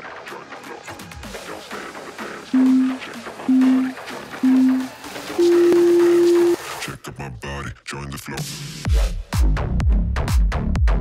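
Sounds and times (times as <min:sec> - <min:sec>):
long low electronic beep: 0:02.6 - 0:06.6.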